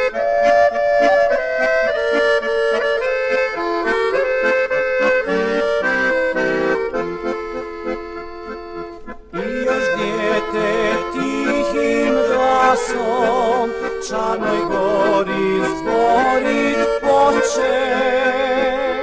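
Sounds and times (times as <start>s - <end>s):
accordion melody: 0.0s - 19.0s.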